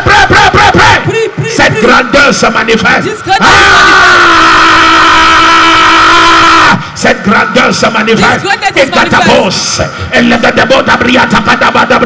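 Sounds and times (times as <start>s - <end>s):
man shouting through microphone: 0.0s - 12.0s.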